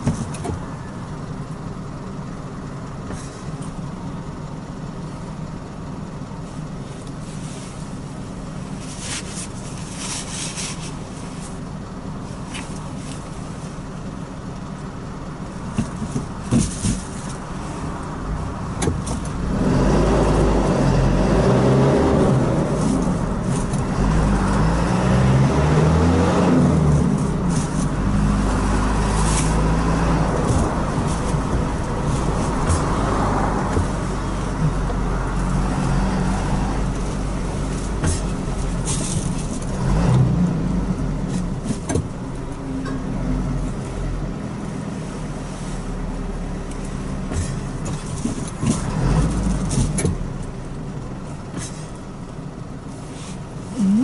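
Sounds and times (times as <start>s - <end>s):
car engine and tyre noise: 0.0s - 54.0s.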